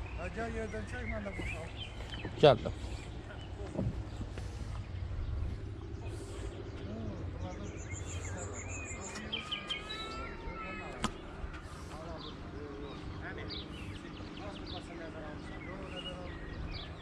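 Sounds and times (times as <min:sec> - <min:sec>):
birds chirping: 0:00.0 - 0:17.0
faint distant voices: 0:00.0 - 0:17.0
low rumble: 0:01.6 - 0:09.0.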